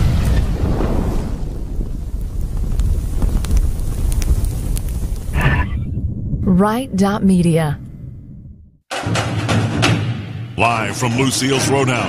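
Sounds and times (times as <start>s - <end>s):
fire crackles: 0.0s - 6.8s
flames rumbling: 0.0s - 7.0s.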